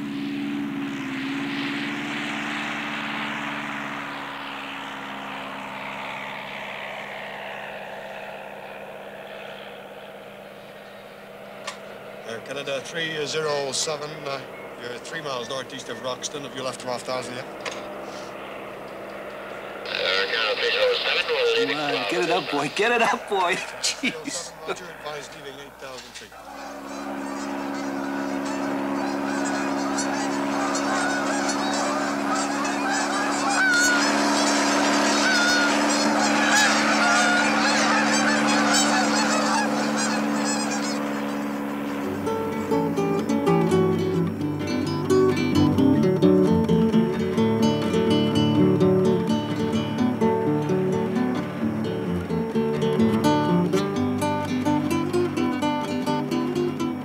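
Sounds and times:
steady low drone: 0.0s - 57.0s
geese honking: 12.9s - 45.0s
strummed acoustic guitar: 42.2s - 57.0s.

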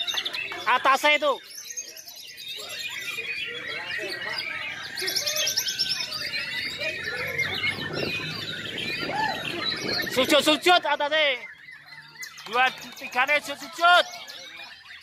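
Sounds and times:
murmur of voices: 0.0s - 15.0s
songbirds whistling and chirping: 0.0s - 15.0s.

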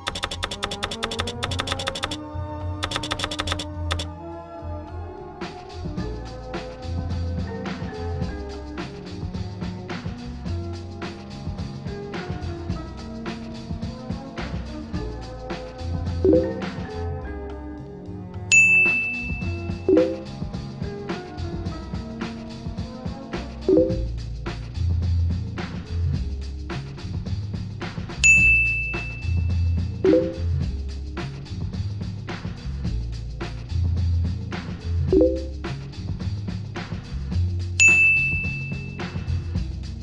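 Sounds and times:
soft background music: 0.0s - 24.3s, 28.2s - 31.3s, 35.0s - 35.7s
bright bell-like ding: 18.5s - 20.2s, 28.2s - 29.6s, 37.8s - 39.2s.

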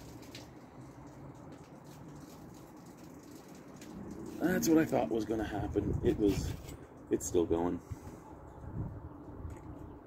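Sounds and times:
beer foam fizzing and dripping: 0.0s - 5.6s.

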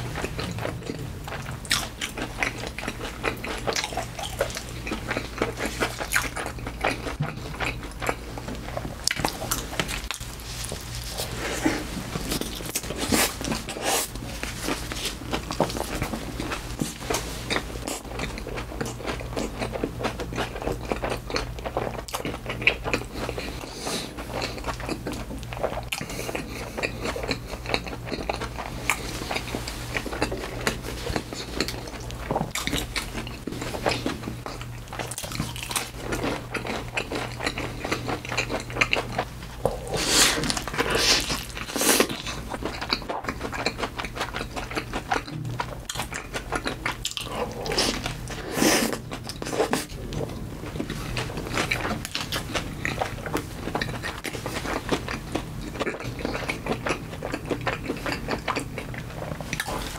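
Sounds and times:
crunching: 0.0s - 23.6s
person chewing food: 0.0s - 59.9s.

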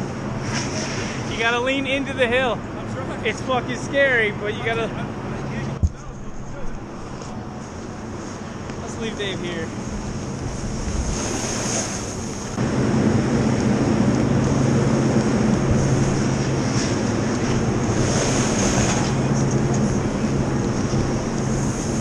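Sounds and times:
snowboard scraping over snow: 8.9s - 12.6s, 14.3s - 22.0s
wind on microphone: 9.8s - 22.0s.

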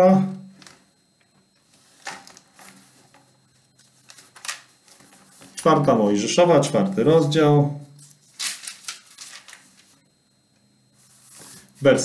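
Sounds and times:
thin pages rustling: 1.7s - 5.6s, 8.0s - 10.0s.

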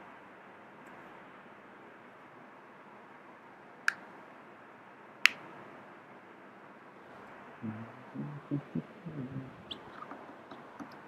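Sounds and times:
person murmuring: 7.6s - 10.0s.

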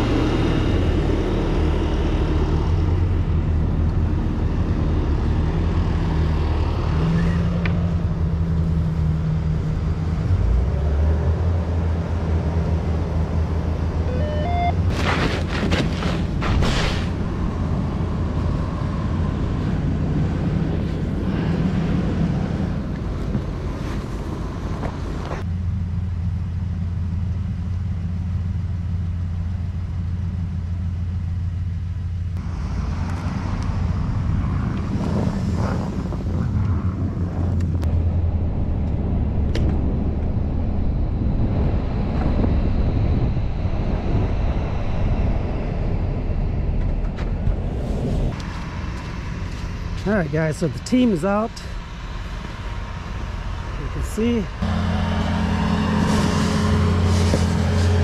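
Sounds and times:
vehicle engine droning: 0.0s - 58.0s.

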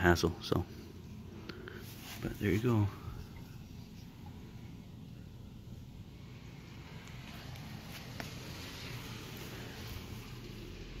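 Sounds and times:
low rumble and hiss: 0.0s - 11.0s.

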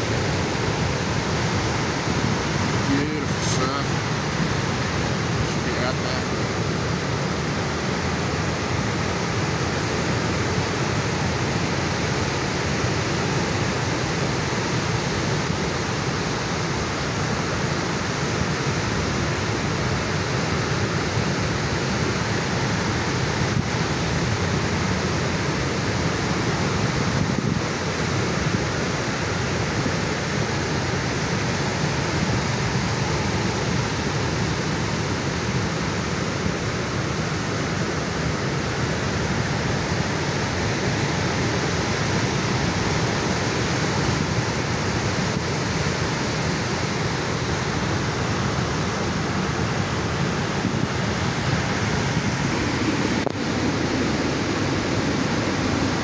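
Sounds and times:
ocean surf breaking on beach: 0.0s - 56.0s.

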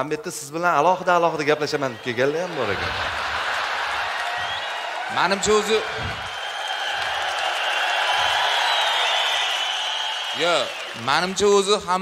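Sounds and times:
audience clapping: 1.7s - 12.0s
audience laughing: 2.2s - 4.4s.

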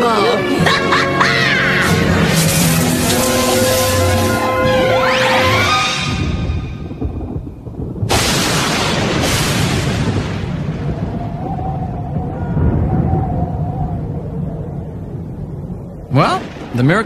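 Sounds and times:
thunder cracks and rumble: 1.8s - 17.0s.

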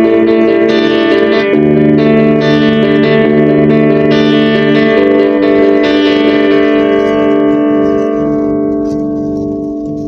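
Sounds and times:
overdriven electric guitar chord ringing: 0.0s - 10.0s.

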